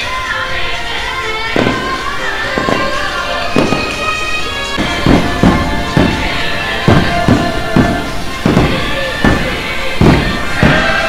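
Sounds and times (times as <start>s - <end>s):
fireworks going off: 0.0s - 11.0s
loud music: 0.0s - 11.0s.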